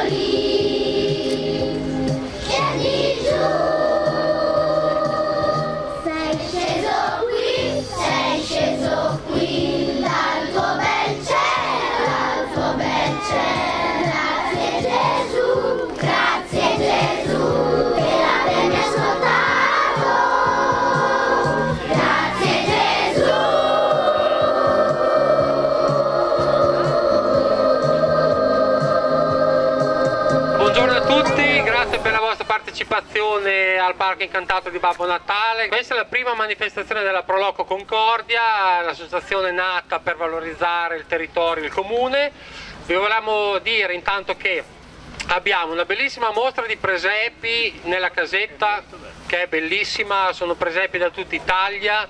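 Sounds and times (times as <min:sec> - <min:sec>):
choir singing held notes: 0:00.0 - 0:32.5
pulsing accompaniment: 0:00.0 - 0:32.5.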